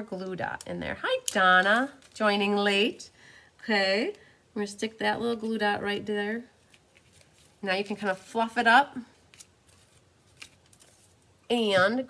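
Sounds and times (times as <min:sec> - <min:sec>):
hands rustling mesh ribbon: 0:06.5 - 0:11.6.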